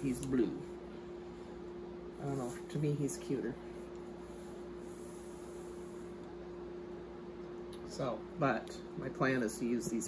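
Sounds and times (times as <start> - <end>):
faint hum: 0.0 - 10.0.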